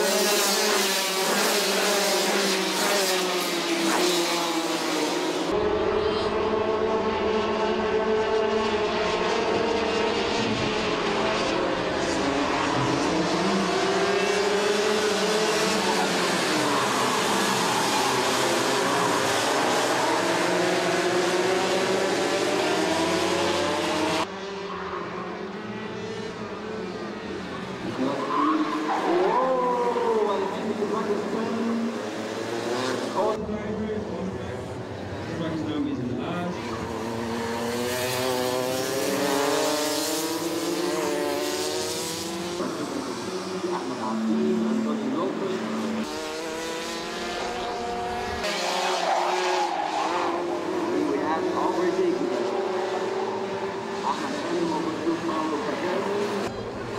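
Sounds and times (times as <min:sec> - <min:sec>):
racing kart engines: 0:00.0 - 0:56.9
kart passing close by: 0:36.7 - 0:42.9.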